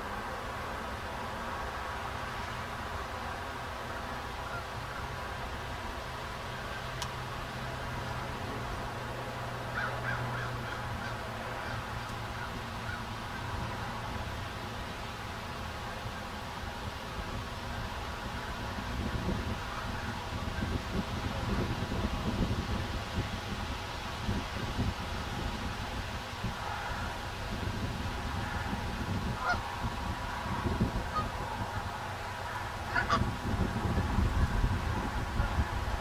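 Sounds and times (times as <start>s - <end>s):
geese honking: 4.4s - 5.4s, 9.7s - 14.1s, 29.4s - 29.7s, 31.1s - 33.3s.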